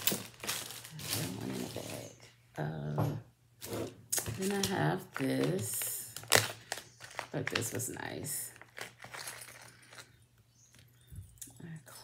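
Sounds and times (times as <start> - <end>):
plastic bag rustling: 0.0 - 2.2, 3.6 - 10.2.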